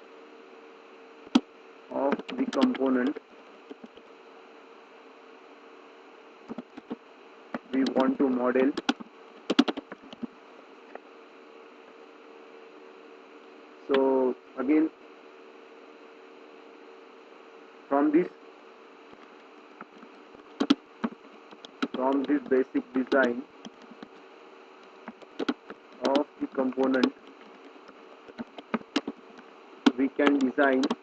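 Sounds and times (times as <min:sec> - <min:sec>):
low background buzz: 0:00.0 - 0:31.0
keyboard typing clicks: 0:02.1 - 0:04.0, 0:06.5 - 0:07.0, 0:07.6 - 0:10.3, 0:19.1 - 0:24.1, 0:24.8 - 0:31.0.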